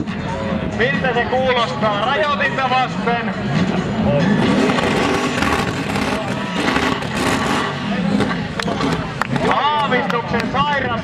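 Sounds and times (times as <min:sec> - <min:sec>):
car engine revving hard: 0:04.3 - 0:09.2
spinning tyres hissing: 0:04.4 - 0:09.2.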